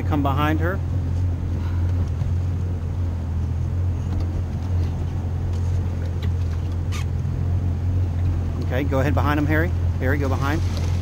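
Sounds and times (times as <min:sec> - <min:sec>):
boat engine idling: 0:00.0 - 0:11.0.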